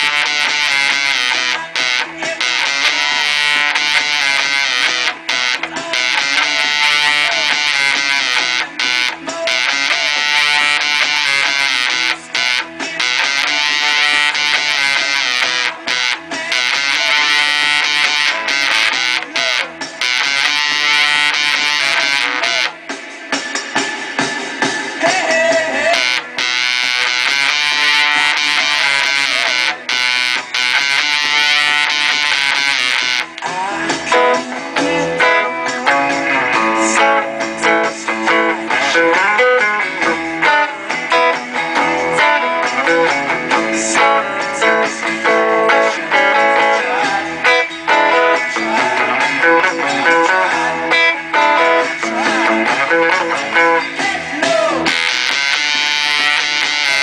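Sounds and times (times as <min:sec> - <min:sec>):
fuzzed electric guitar riff: 0:00.0 - 0:57.0.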